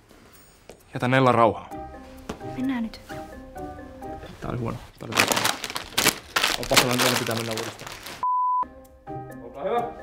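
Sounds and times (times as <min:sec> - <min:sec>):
plastic packets crinkling: 0:05.0 - 0:08.2
person speaking: 0:06.4 - 0:08.2.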